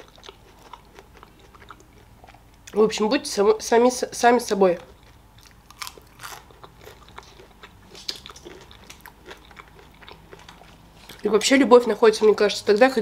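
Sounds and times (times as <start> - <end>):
person chewing crispy food: 0.0 - 2.8, 4.8 - 11.3.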